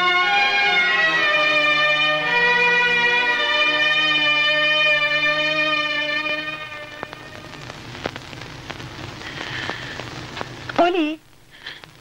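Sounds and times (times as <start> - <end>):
held multi-toned musical note: 0.0 - 7.6
steady hiss with clicks and crackles: 5.4 - 12.0.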